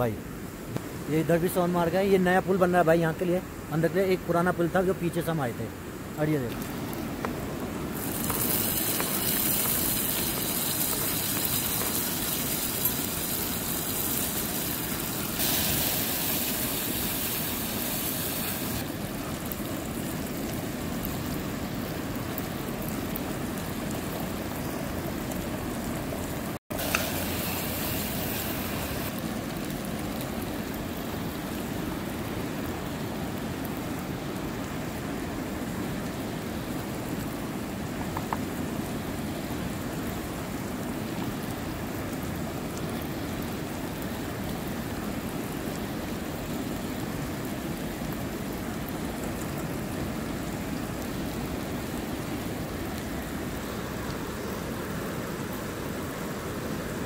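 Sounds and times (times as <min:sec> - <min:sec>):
river rushing: 0:00.0 - 0:57.0
bright hiss: 0:07.7 - 0:19.7, 0:26.7 - 0:29.3.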